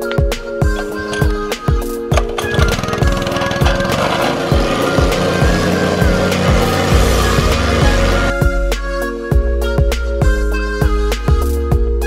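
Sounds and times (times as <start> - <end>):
background music with steady beat: 0.0 - 12.0
plate compactor vibrating over stone: 2.1 - 8.3.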